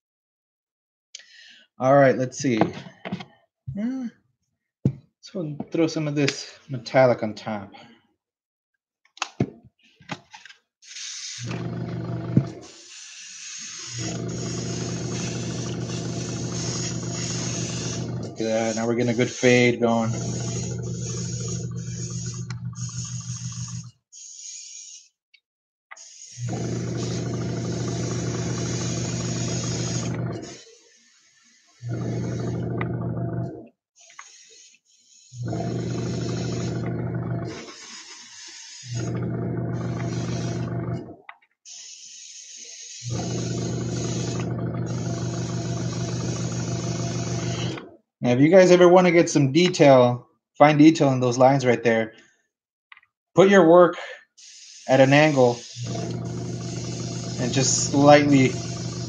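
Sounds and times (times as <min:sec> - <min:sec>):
airbrush air hiss: 0:10.8 - 0:11.5, 0:12.6 - 0:25.1, 0:26.0 - 0:27.2, 0:28.0 - 0:31.8, 0:34.0 - 0:35.4, 0:37.6 - 0:39.0, 0:41.7 - 0:44.4, 0:54.4 - 0:55.9, 0:56.7 - 0:58.5
airbrush compressor hum: 0:10.8 - 0:25.1, 0:26.0 - 0:41.0, 0:41.7 - 0:47.9, 0:54.4 - 0:59.0.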